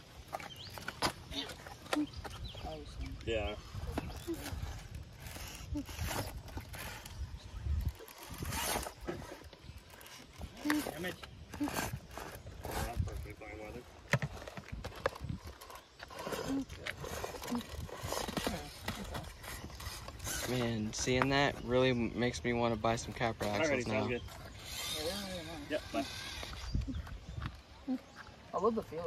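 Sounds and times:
wind on microphone: 0:02.0 - 0:10.7, 0:24.2 - 0:28.2.

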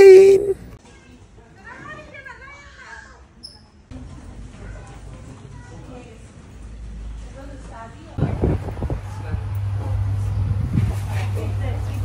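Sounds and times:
low hum of a large hall: 0:00.0 - 0:12.0.

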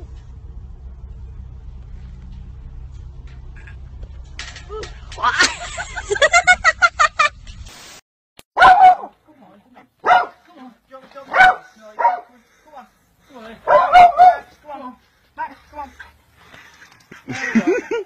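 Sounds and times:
dog barking: 0:08.6 - 0:09.2, 0:10.0 - 0:10.4, 0:11.3 - 0:12.4, 0:13.6 - 0:14.5.

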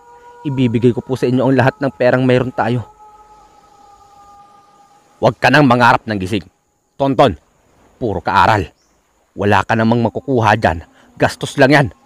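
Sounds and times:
sustained drone music: 0:00.0 - 0:07.1
soft hiss: 0:00.0 - 0:12.0.

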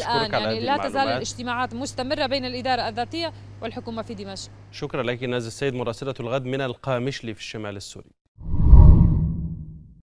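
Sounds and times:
deep whoosh: 0:08.4 - 0:10.0.

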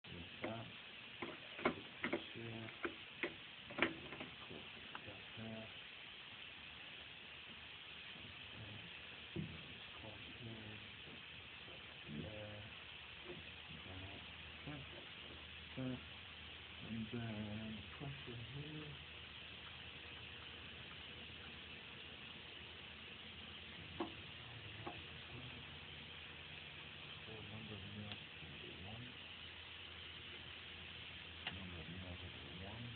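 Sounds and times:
steady hiss: 0:00.0 - 0:32.9
sharp clicks and knocks of machine: 0:01.2 - 0:04.6.

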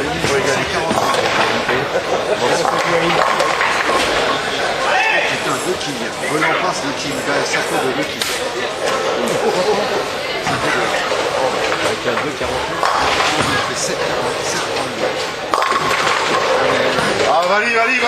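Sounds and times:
many people talking: 0:00.0 - 0:18.0
bowling ball striking pins: 0:02.4 - 0:04.4, 0:10.6 - 0:17.3.

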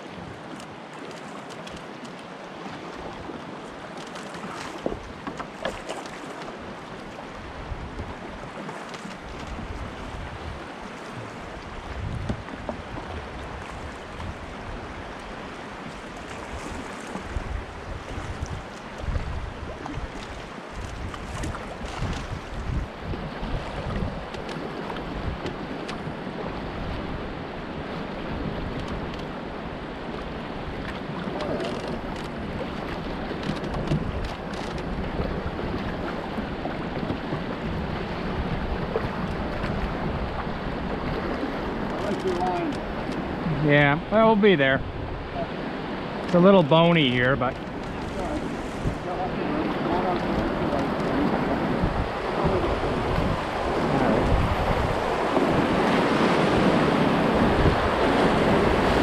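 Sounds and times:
river water rushing and splashing: 0:00.0 - 0:59.0
wind buffeting microphone: 0:07.3 - 0:08.6, 0:09.2 - 0:29.4, 0:30.1 - 0:59.0.

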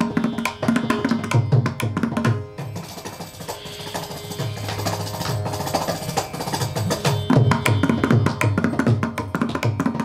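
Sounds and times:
hand drum strokes: 0:00.0 - 0:10.0.

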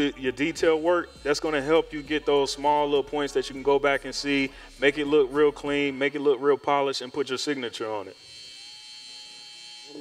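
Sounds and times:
hair trimmer buzzing: 0:00.0 - 0:10.0.

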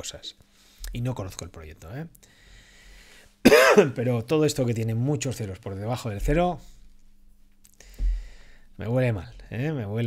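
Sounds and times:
man clearing his throat: 0:03.5 - 0:04.0.

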